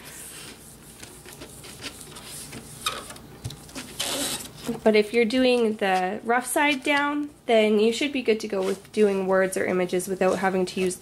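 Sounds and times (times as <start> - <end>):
hands rubbing plastic film: 0.2 - 4.8.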